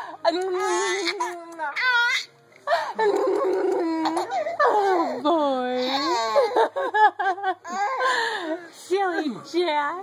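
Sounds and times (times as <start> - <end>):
baby laughing: 1.0 - 5.1.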